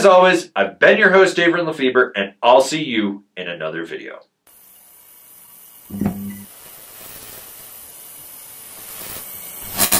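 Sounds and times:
steady hiss: 0:04.4 - 0:09.9.

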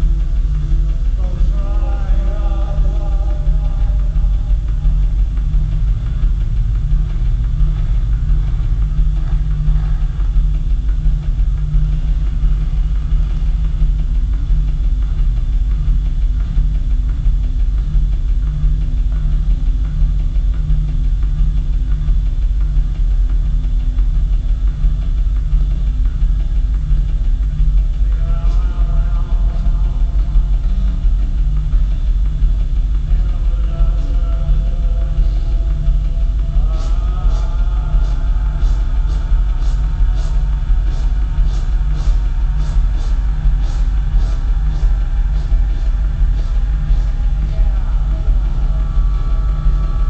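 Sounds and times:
drum-machine beat: 0:00.0 - 0:50.0
low synthesizer bass pulse: 0:00.0 - 0:50.0.

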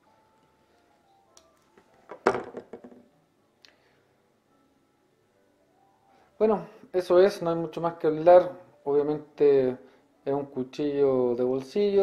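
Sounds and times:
knife knocking on table: 0:02.1 - 0:03.0.

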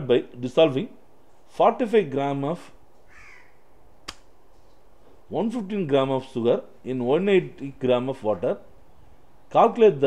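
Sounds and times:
sharp click: 0:04.0 - 0:04.3.

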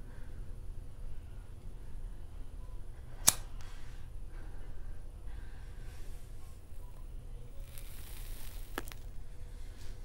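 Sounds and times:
lighter click: 0:03.2 - 0:03.5.

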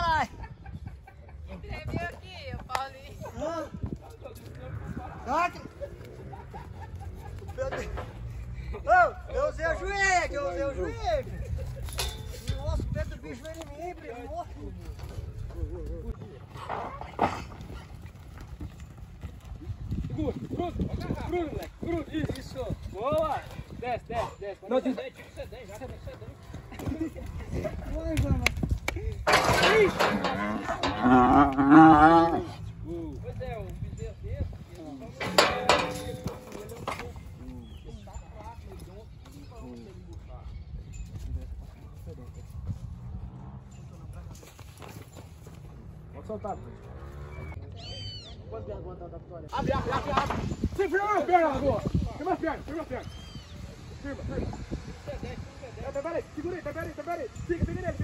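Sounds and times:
hooves thudding on dirt: 0:00.3 - 0:09.2, 0:10.9 - 0:47.6.

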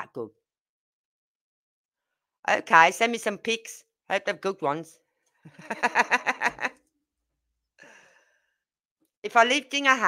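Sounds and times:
person laughing: 0:05.5 - 0:06.8.

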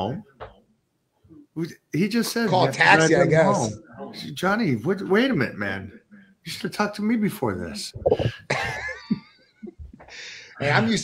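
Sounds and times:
short breaths: 0:10.1 - 0:10.6.

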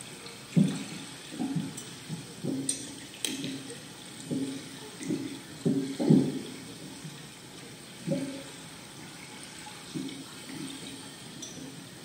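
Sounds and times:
low watery blips: 0:00.0 - 0:12.0
water hiss through a loudspeaker: 0:00.0 - 0:12.0.

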